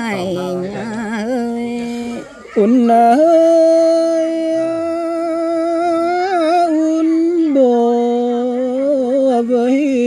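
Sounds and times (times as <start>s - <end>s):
person singing long notes: 0.0s - 10.0s.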